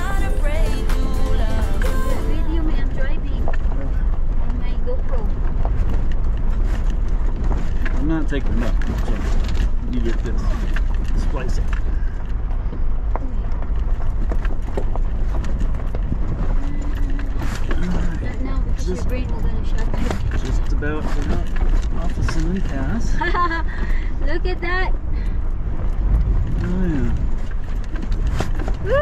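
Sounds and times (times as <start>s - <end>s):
vehicle engine and tyres rumbling: 0.0s - 29.0s
stones and body rattling: 2.6s - 29.0s.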